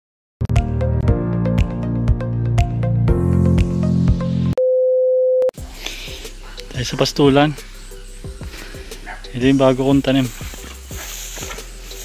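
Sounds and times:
upbeat intro music: 0.4 - 4.6
faint outdoor background: 5.6 - 12.0.

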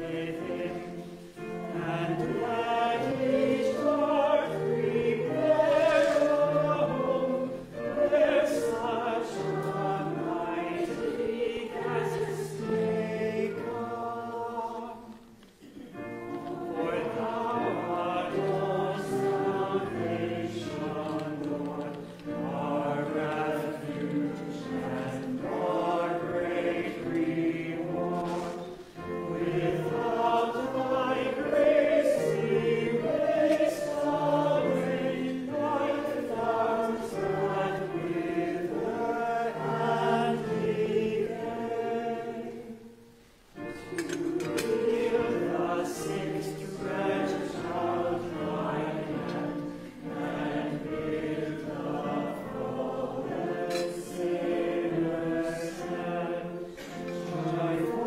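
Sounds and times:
choir singing a hymn: 0.0 - 58.0.

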